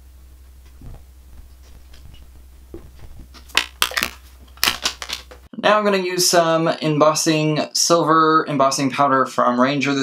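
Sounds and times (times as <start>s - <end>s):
low hum: 0.0s - 5.5s
person speaking: 0.8s - 10.0s.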